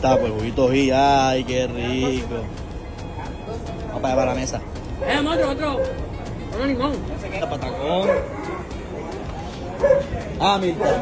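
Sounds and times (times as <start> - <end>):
dog yipping: 0.0 - 0.6, 5.0 - 6.1, 7.9 - 8.8, 9.8 - 11.0
music with ticking beat: 0.0 - 11.0.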